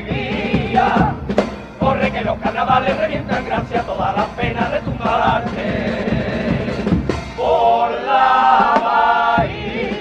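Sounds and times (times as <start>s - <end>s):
instrumental accompaniment: 0.0s - 10.0s
male chorus singing in unison: 0.0s - 10.0s.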